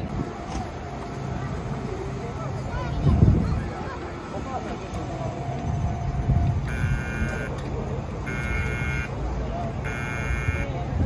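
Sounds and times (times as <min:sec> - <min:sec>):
low steady hum: 0:00.0 - 0:11.0
people talking: 0:00.0 - 0:11.0
electronic warning buzzer beeping: 0:04.0 - 0:10.8.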